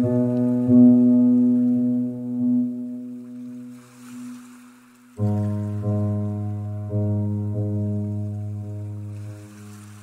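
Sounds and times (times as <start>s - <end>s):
slow soft piano music: 0.0s - 10.0s.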